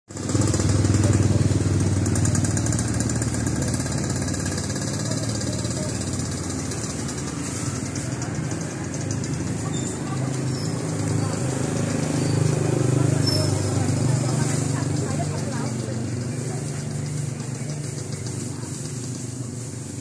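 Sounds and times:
motorcycle engine idling: 0.1 - 20.0.

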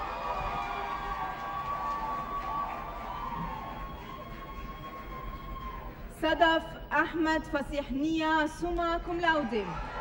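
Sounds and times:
applause: 0.0 - 6.1.

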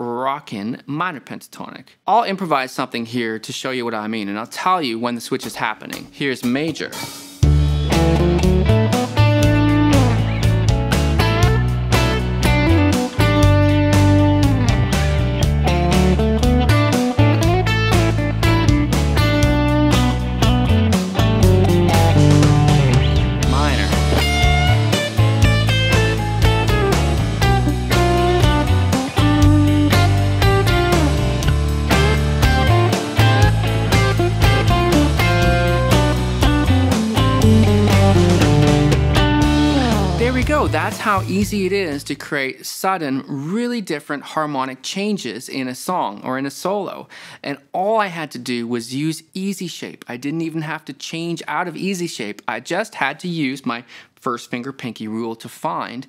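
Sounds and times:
drums backing track: 5.4 - 42.2
electric guitar lead: 7.4 - 41.3.

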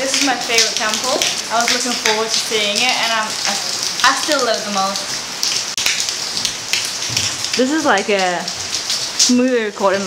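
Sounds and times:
rain splashing onto stone: 0.0 - 10.0
water drips: 0.0 - 10.0.

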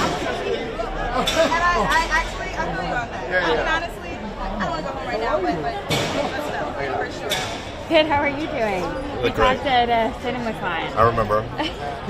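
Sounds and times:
people talking excitedly: 0.0 - 12.0.

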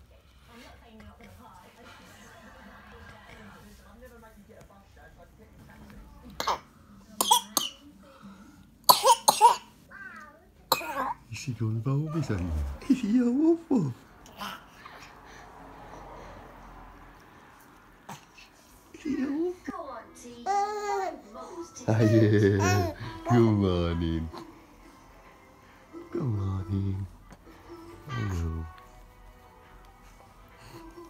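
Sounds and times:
faint baby noises: 14.2 - 15.4, 20.4 - 23.4.

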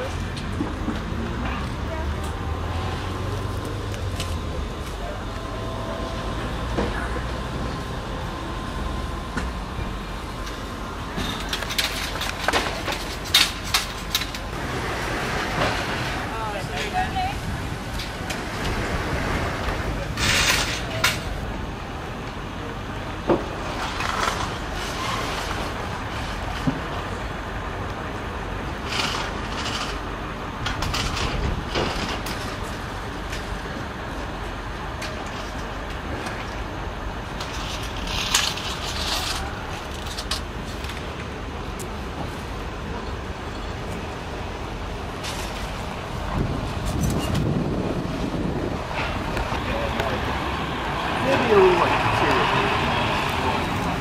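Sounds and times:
low rumble of traffic: 0.0 - 54.0.

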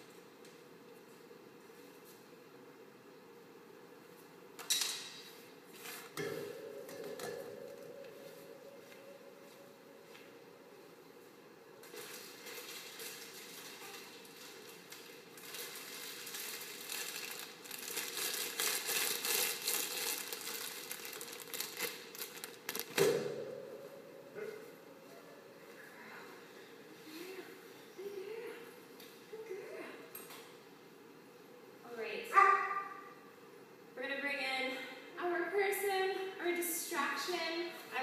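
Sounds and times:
plastic bag crinkling: 11.8 - 23.0
dog barking: 32.3 - 33.1.

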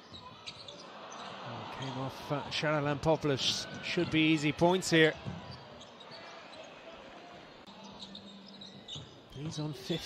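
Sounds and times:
crowd murmur in large hall: 0.0 - 10.0.

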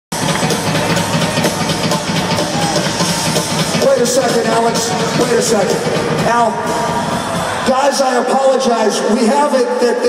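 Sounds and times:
rock drum kit playing: 0.1 - 7.7.

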